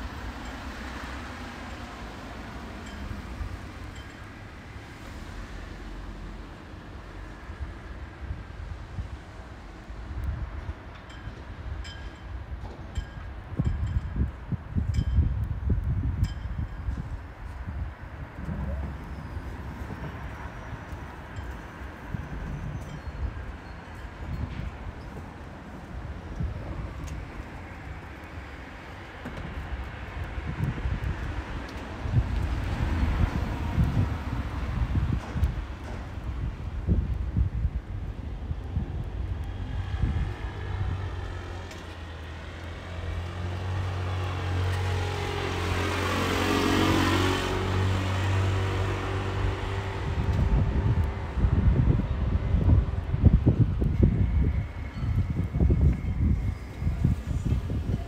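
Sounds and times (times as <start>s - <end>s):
car passing by: 0.0s - 7.7s, 39.4s - 52.8s
low gusty rumble: 0.0s - 46.0s, 47.2s - 58.0s
vehicle approaching: 38.7s - 58.0s.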